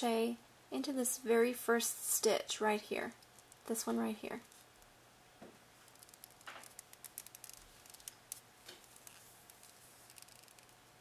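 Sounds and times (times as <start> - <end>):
crochet hook clicks and scratches: 5.8 - 10.8.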